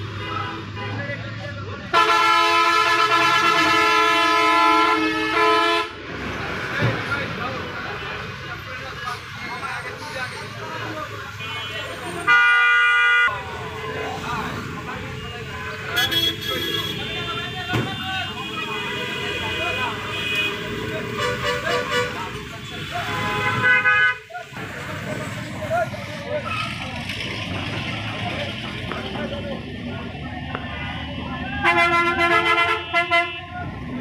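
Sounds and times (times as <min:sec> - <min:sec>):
street traffic noise: 0:00.0 - 0:34.0
voices of people passing: 0:00.0 - 0:34.0
vehicle horn honk: 0:15.9 - 0:20.6.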